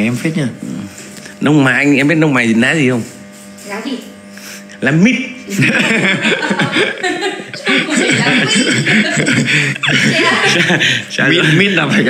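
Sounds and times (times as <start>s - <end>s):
men laughing: 5.4s - 12.0s.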